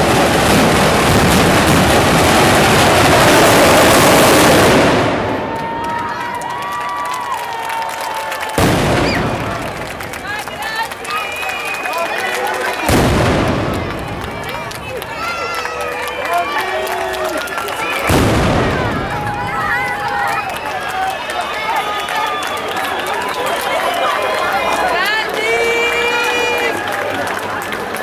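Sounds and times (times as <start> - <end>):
firework blasts with echo: 0.0 - 6.4, 8.4 - 20.9
crowd chatter: 0.0 - 28.0.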